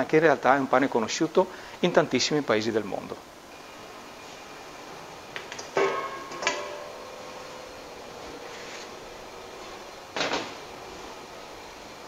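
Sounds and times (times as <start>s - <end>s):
metal bowls clanking: 5.8s - 7.0s.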